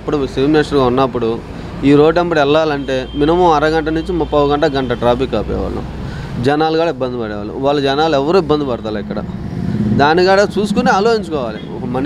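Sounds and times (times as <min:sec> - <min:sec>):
passing vehicle engine hum: 0:00.0 - 0:12.0
man's voice: 0:10.0 - 0:12.0.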